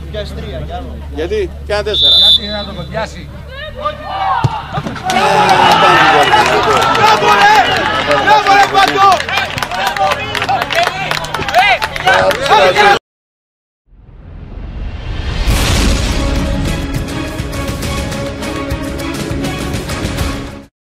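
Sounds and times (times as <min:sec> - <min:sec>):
referee's whistle blast: 0:02.0 - 0:03.0
crowd shouting and cheering: 0:03.4 - 0:13.0.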